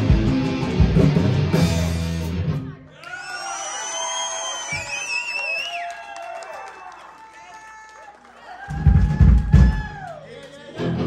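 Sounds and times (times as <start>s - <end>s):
electric guitar and bass ringing: 0.0s - 2.8s.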